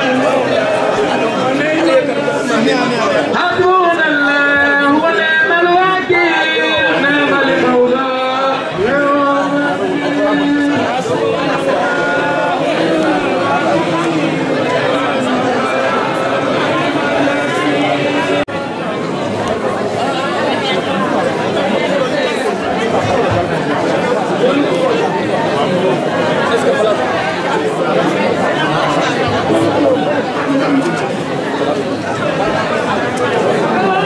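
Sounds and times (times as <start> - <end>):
many people talking: 0.0 - 34.0.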